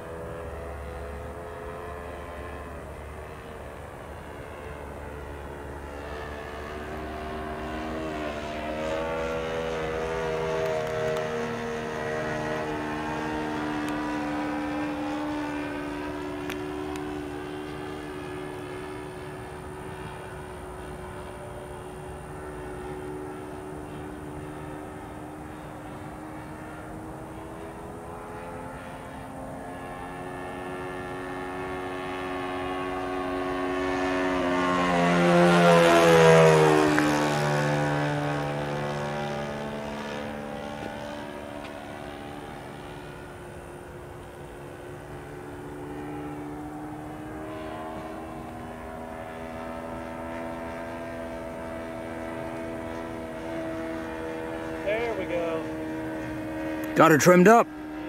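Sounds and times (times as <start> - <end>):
model plane engine in flight: 0.0 - 58.0.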